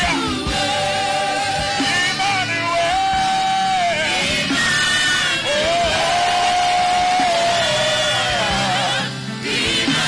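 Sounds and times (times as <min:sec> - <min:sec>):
backing singers and accompaniment: 0:00.0 - 0:10.0.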